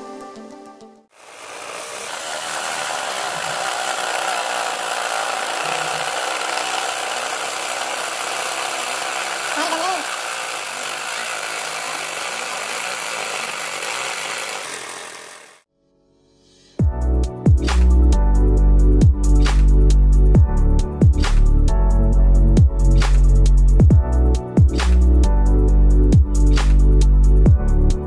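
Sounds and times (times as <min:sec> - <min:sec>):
jigsaw cutting board: 0:01.2 - 0:15.6.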